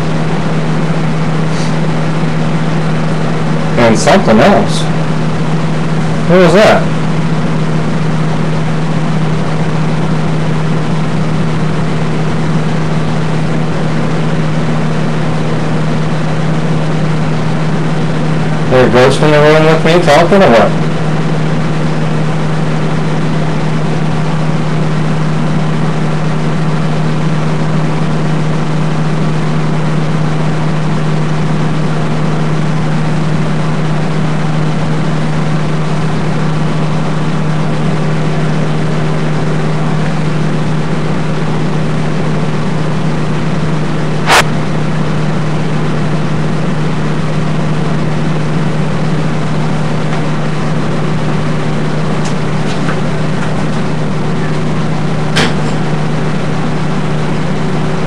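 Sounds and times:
air conditioner fan humming: 0:00.0 - 0:58.0
sharp click: 0:44.2 - 0:44.5.

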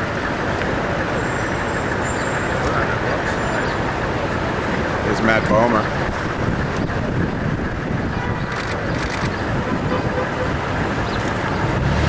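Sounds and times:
city street traffic: 0:00.0 - 0:12.0.

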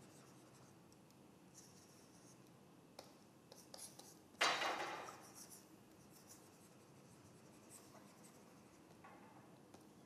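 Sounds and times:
stylus scratching on tablet screen: 0:00.0 - 0:00.8, 0:01.5 - 0:09.0.

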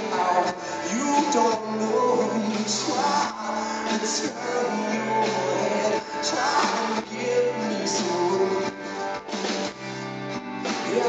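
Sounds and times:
electric guitar: 0:00.0 - 0:11.0
live rock band playing: 0:00.0 - 0:11.0.

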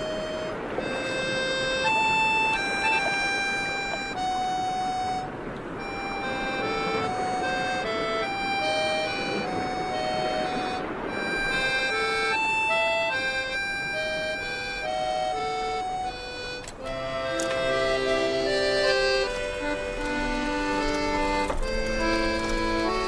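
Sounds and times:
slow accordion melody: 0:00.0 - 0:23.0.

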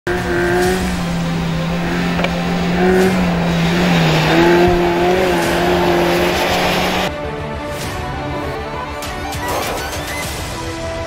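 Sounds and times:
car engine at high revs: 0:00.0 - 0:07.1.

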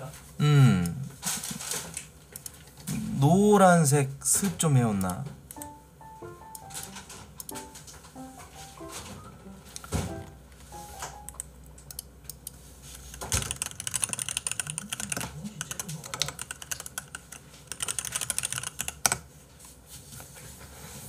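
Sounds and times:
keyboard typing clicks: 0:05.0 - 0:09.2, 0:09.8 - 0:19.2.

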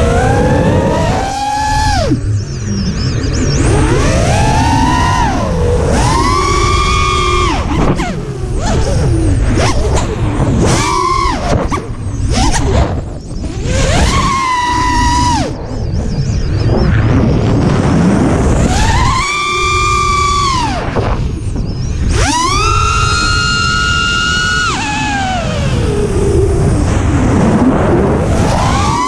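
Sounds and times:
heavy wind noise: 0:00.0 - 0:29.0
quadcopter motors whining: 0:00.0 - 0:29.0.

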